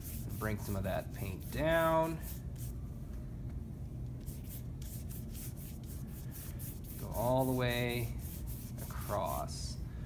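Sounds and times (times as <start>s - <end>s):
paintbrush swishing on paper: 0.0s - 2.8s, 4.2s - 9.6s.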